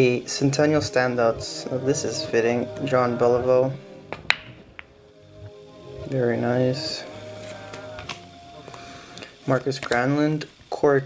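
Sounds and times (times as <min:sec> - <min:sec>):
soft background music: 0:00.0 - 0:10.5.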